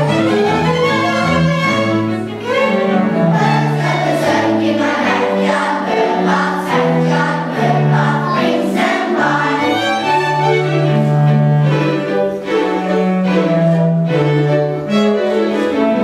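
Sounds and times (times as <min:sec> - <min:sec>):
bowed strings sustained notes: 0:00.0 - 0:16.0
children's choir singing: 0:00.0 - 0:16.0.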